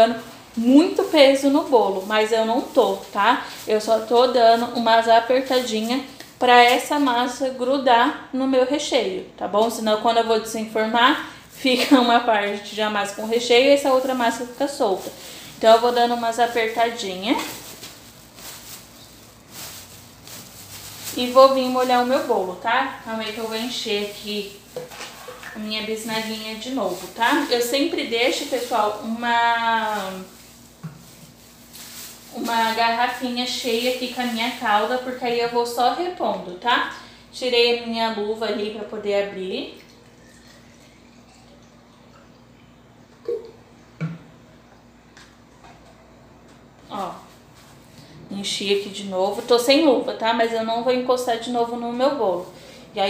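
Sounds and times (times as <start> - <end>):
plastic gloves and film crinkling: 0.0 - 41.6, 46.8 - 53.0
background hiss: 10.9 - 37.4.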